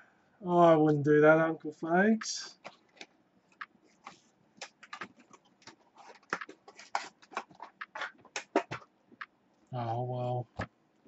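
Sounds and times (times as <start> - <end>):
hands handling things on tabletop: 2.6 - 9.4.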